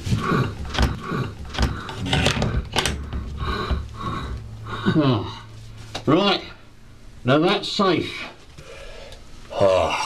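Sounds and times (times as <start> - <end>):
heavy breathing through gas mask: 0.0 - 5.8, 8.6 - 9.2.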